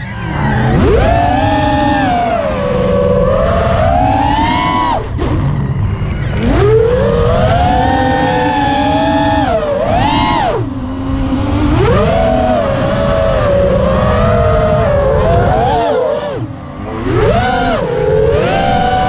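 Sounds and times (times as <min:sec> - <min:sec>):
drone motors whining: 0:00.0 - 0:19.0
low rushing noise: 0:00.0 - 0:19.0.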